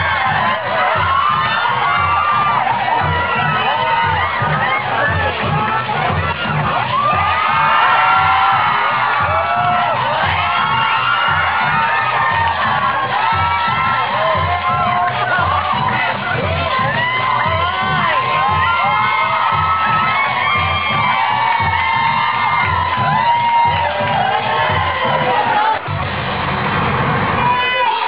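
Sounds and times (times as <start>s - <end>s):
dance music with steady beat: 0.0s - 27.6s
audience cheering and shouting: 0.0s - 28.0s.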